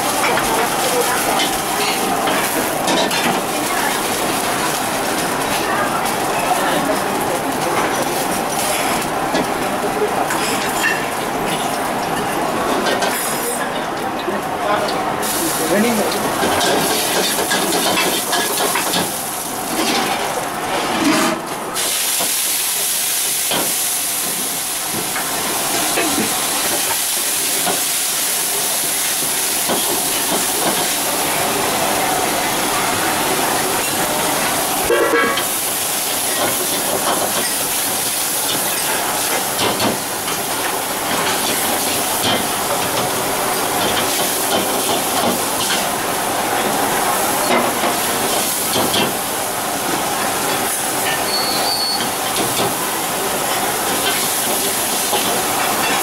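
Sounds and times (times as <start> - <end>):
gas burner flame hissing: 0.0 - 56.0.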